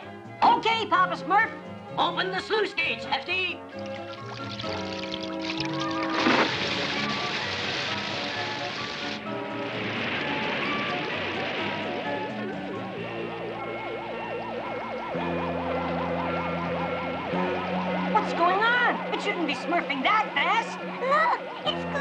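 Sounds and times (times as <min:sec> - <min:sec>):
background music with held notes: 0:00.0 - 0:22.0
gushing water: 0:03.7 - 0:13.1.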